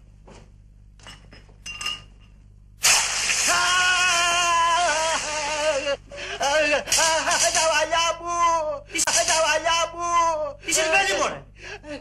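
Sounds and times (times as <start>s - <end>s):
glass clinks: 1.0s - 2.4s.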